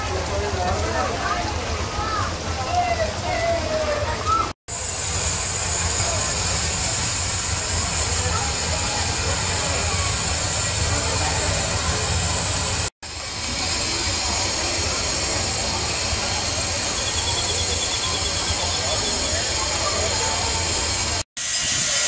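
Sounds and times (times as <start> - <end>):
steam locomotive hissing: 2.9 - 22.0.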